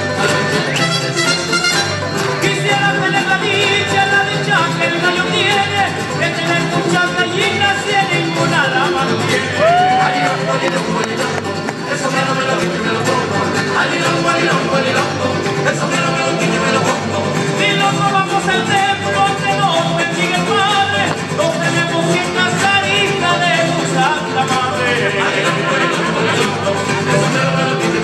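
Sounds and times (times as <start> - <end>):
mariachi ensemble playing: 0.0 - 28.0.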